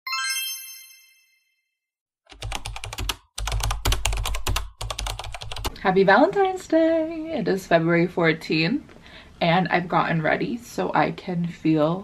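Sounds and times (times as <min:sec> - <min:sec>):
bright chime: 0:00.1 - 0:01.6
keyboard typing clicks: 0:02.3 - 0:05.7.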